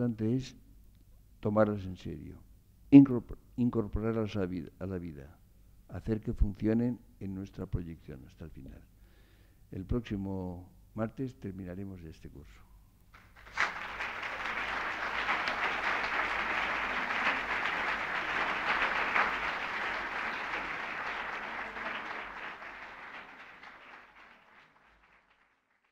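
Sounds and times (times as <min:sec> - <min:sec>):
audience applauding: 0:13.2 - 0:25.9.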